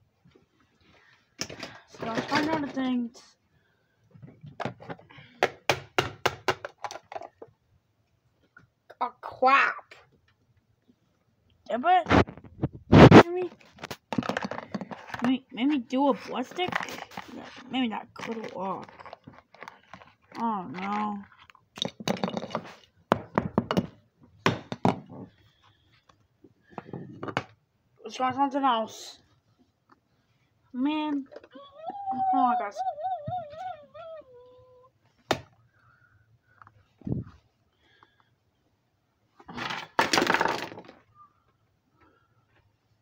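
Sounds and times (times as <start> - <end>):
objects knocking and thudding: 1.4 - 3.0, 4.1 - 7.6, 12.1 - 25.7, 26.4 - 27.6, 39.4 - 41.1.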